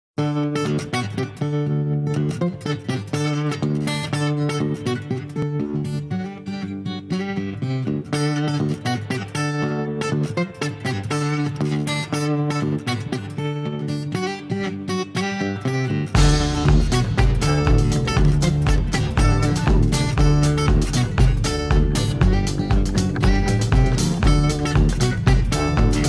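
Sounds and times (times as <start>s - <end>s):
acoustic guitar strumming chords: 0.2s - 26.0s.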